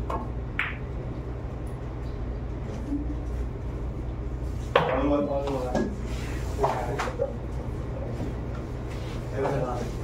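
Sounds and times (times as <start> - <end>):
pool balls clacking: 0.0 - 0.8
steady low hum: 0.0 - 10.0.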